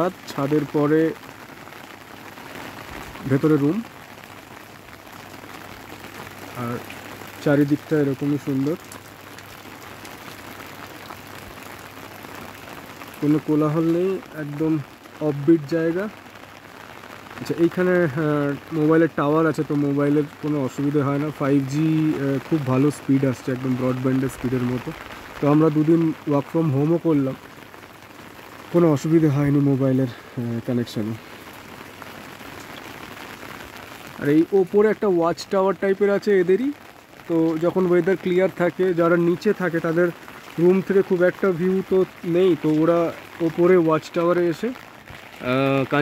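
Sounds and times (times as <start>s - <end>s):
rain pattering: 0.0s - 46.0s
raindrop ticks: 0.0s - 46.0s.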